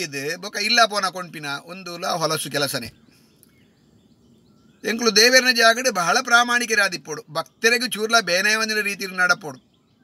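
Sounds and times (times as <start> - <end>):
man speaking: 0.0 - 3.0, 4.8 - 9.6
faint bird chirps: 0.0 - 10.0
faint outdoor background hush: 0.0 - 10.0.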